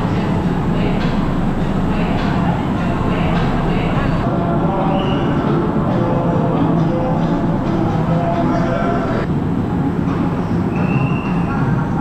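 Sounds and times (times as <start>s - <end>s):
background music: 0.0s - 12.0s
crowd chatter: 0.0s - 12.0s.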